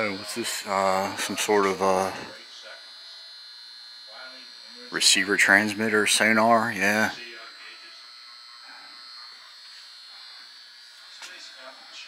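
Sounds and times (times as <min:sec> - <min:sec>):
high-pitched electrical whine: 0:00.0 - 0:12.0.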